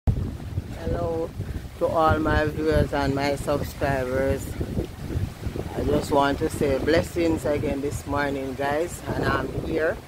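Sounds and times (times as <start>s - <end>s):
wind buffeting microphone: 0.1s - 10.0s
person speaking: 5.7s - 10.0s.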